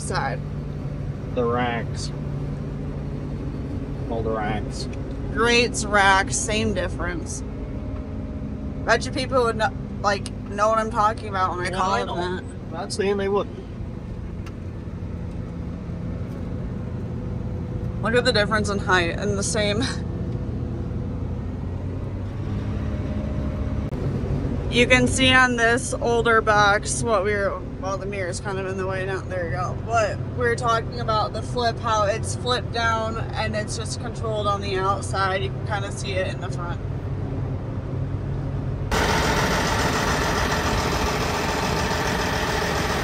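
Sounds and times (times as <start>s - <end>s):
cab hum: 0.0s - 20.5s, 38.9s - 43.0s
harvester engine drone: 0.0s - 43.0s.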